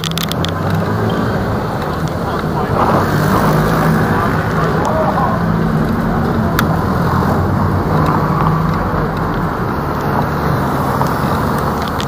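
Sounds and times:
bus running close by: 0.0s - 12.0s
road traffic noise: 0.0s - 12.0s.

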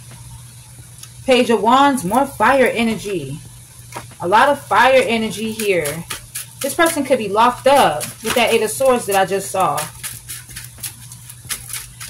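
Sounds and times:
low hum: 0.0s - 10.0s
cards clicking and tapping: 8.0s - 9.2s.

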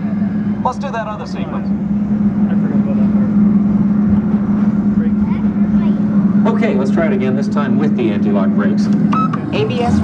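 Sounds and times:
ride vehicle humming and rumbling: 0.0s - 10.0s.

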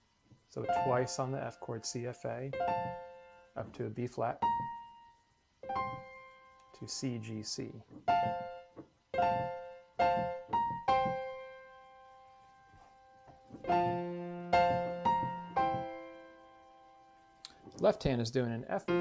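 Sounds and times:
piano chords: 0.0s - 7.4s, 8.0s - 17.4s, 18.7s - 19.0s.

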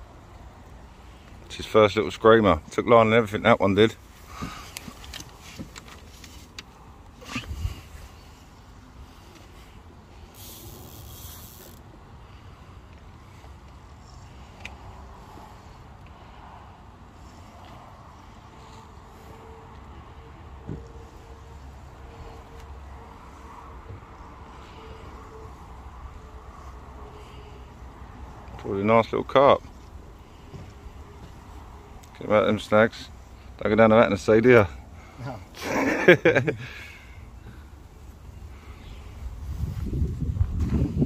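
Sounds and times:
fishing reel clicks: 10.3s - 11.8s.

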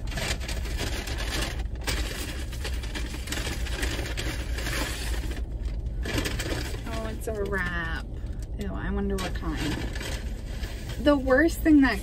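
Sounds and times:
paper bag rustling and crinkling: 0.0s - 8.4s, 9.0s - 12.0s
low steady hum: 0.0s - 12.0s.

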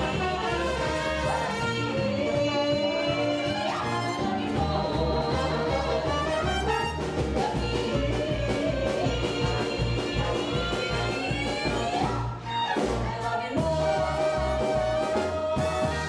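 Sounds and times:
live band playing jazzy dance music: 0.0s - 16.0s.

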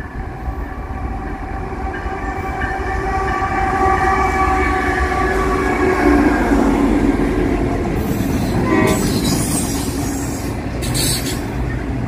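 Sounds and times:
diesel locomotives passing: 0.0s - 12.0s
wheel and rail noise: 0.0s - 12.0s
train horn blast: 1.8s - 6.6s, 8.4s - 9.4s.

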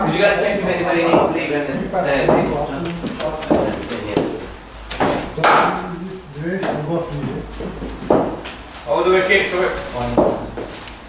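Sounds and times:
men's voices: 0.0s - 10.8s.

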